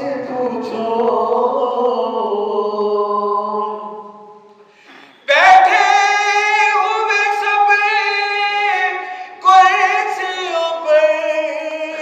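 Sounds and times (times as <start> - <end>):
man chanting unaccompanied: 5.3 - 12.0.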